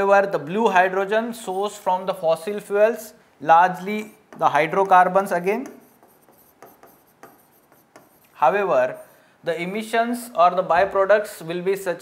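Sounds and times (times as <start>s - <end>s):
writing strokes on screen: 3.8s - 9.3s.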